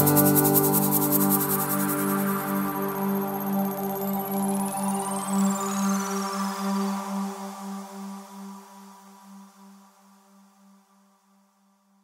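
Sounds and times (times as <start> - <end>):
synthesizer chords: 0.0 - 4.0.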